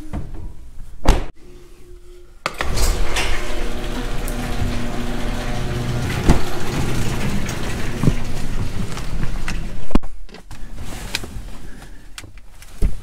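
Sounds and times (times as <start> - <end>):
garage door opener drone: 2.5 - 9.8.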